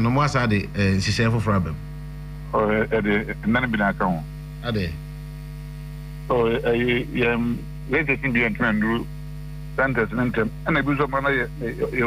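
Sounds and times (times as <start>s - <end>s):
electrical mains hum: 0.0s - 12.0s
person speaking: 2.5s - 5.0s, 6.3s - 9.1s, 9.8s - 12.0s.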